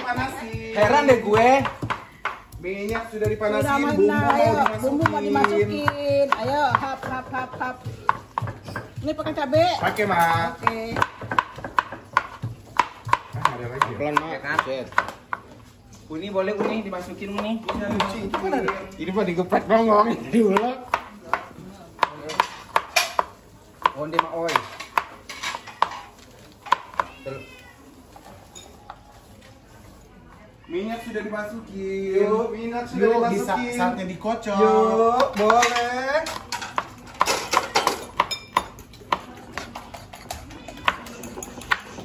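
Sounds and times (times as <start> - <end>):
stone pestle knocking mortar: 0.0 - 15.2
knife chopping on wooden board: 0.0 - 15.5, 20.4 - 26.0.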